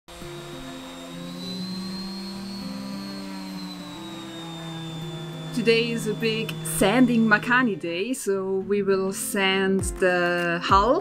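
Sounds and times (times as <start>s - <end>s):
orbital sander whining: 0.1s - 9.3s
background music of held chords: 0.1s - 11.0s.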